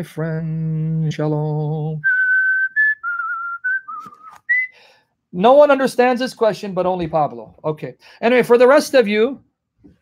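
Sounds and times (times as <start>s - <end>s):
man whistling a tune: 2.0s - 4.8s.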